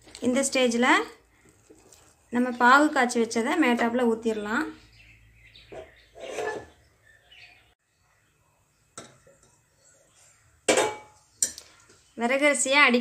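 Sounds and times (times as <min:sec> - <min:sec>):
wooden spatula stirring rice: 0:01.4 - 0:02.5
spatula scraping metal pot: 0:05.7 - 0:06.8.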